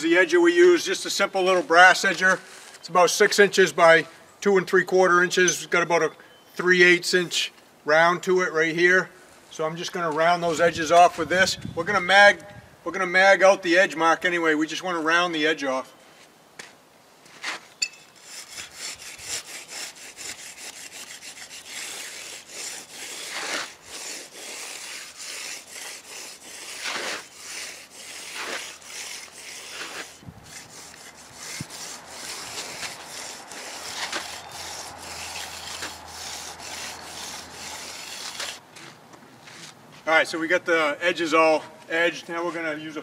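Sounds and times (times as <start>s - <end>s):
hand edger scraping concrete: 17.4s - 38.6s.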